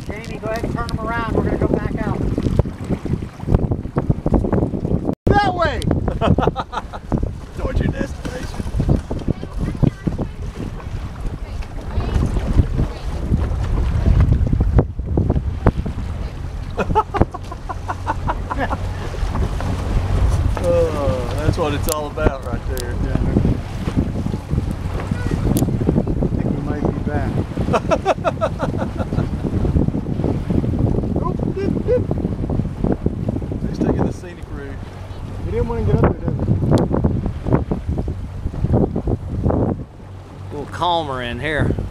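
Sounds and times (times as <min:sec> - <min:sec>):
water splashing against hull: 0:00.0 - 0:41.9
wind buffeting microphone: 0:00.0 - 0:41.9.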